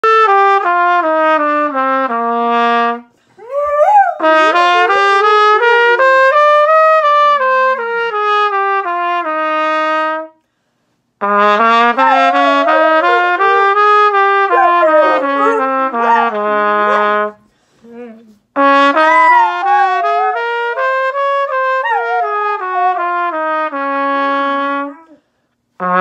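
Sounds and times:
trumpet playing held notes: 0.0 - 10.4, 11.2 - 17.4, 18.6 - 25.2, 25.8 - 26.0
dog howling: 3.4 - 4.4, 12.0 - 13.8, 14.5 - 17.1, 19.0 - 20.5, 21.8 - 23.0.

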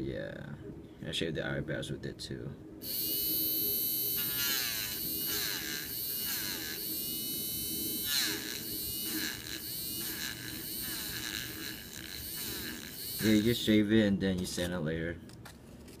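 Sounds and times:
electric eraser whining: 2.8 - 13.8.

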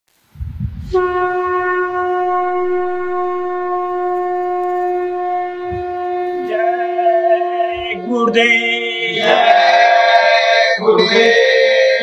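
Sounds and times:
low rumble: 0.2 - 8.0
conch shell blown: 0.9 - 12.0.

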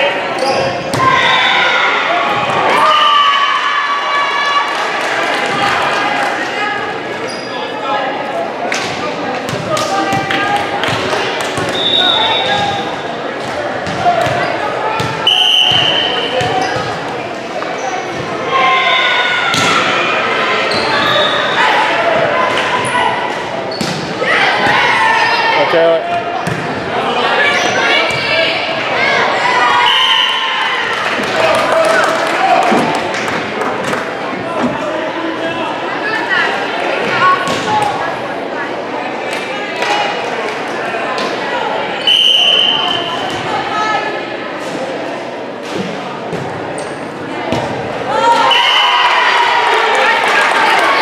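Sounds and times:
volleyball hit and bouncing: 26.4 - 26.8.

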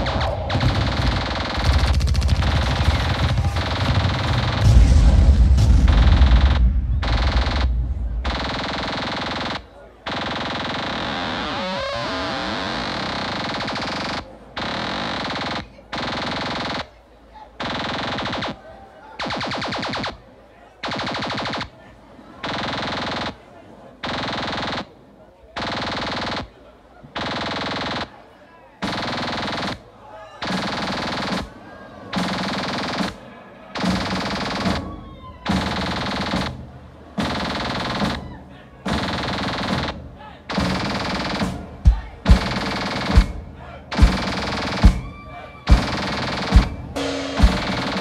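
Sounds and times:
live band blasts: 0.0 - 17.0, 27.3 - 48.0
bass drum hits: 1.8 - 8.2.

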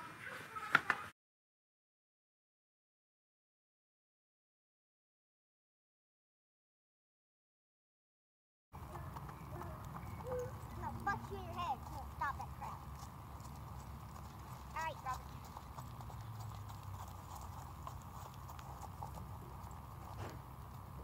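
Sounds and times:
horse hoofbeats on grass: 8.8 - 21.0.

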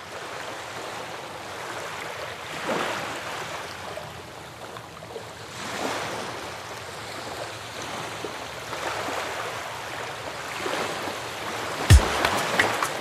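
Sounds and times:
sea waves surging: 8.9 - 13.0
loud deep thump: 11.9 - 12.8
music: 11.9 - 13.0.

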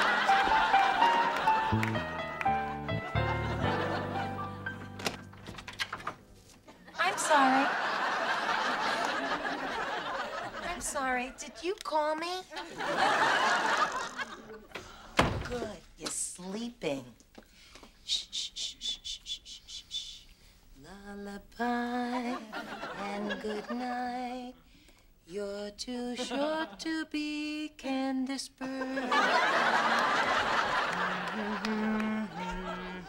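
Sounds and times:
studio audience laughing: 0.0 - 4.9, 6.7 - 11.6, 12.5 - 14.8, 22.3 - 23.8, 28.8 - 33.0.

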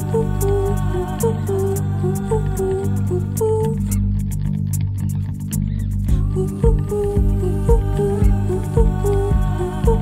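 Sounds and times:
electric bass low notes: 0.0 - 10.0
high ticking beat: 6.1 - 10.0.

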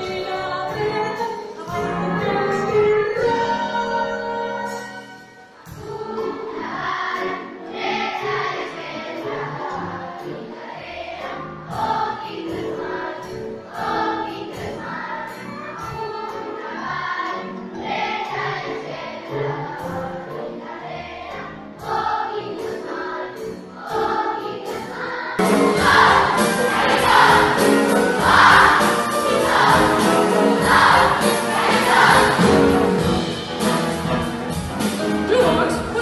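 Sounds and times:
instrumental ensemble: 0.0 - 9.5, 10.1 - 36.0
children's choir singing: 0.0 - 36.0.

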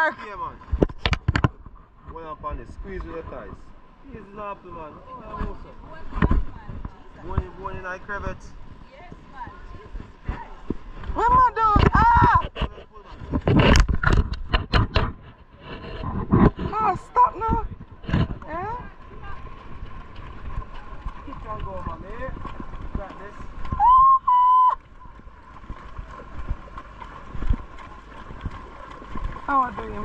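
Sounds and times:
horse hooves clopping: 17.8 - 24.0, 24.8 - 30.0
high whistle-like tone: 23.8 - 24.8.

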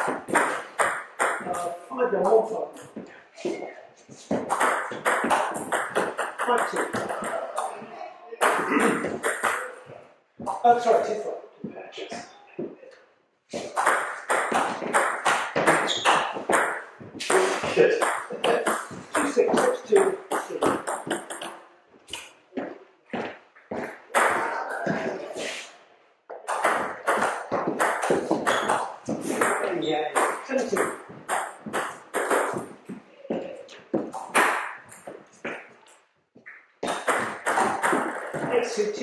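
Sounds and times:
people's voices: 5.3 - 13.9, 17.2 - 21.4, 23.7 - 25.8, 31.7 - 34.2.

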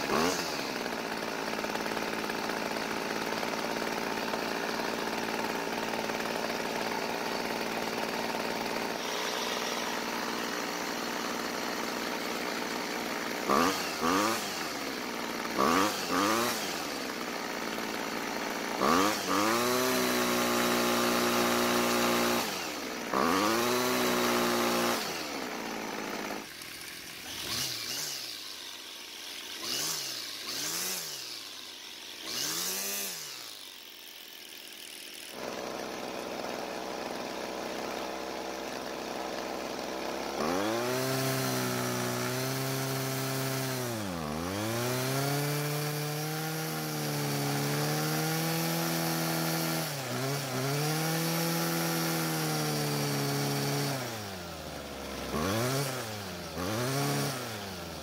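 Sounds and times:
string trimmer engine idling and revving: 0.0 - 58.0.

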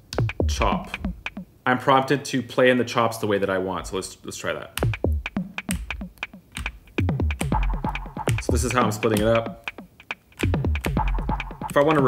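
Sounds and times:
pads clicking: 0.0 - 1.5, 4.8 - 12.0
sampler playing short hits: 0.1 - 1.5, 4.8 - 12.0.

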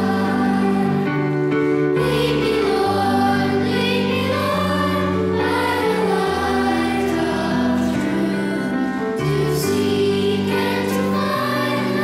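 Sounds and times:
choir singing a hymn: 0.0 - 12.0
sustained accompaniment chords: 0.0 - 12.0.

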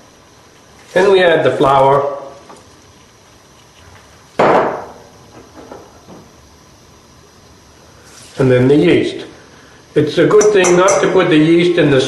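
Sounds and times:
sharp knock on bowl: 4.4 - 5.0.

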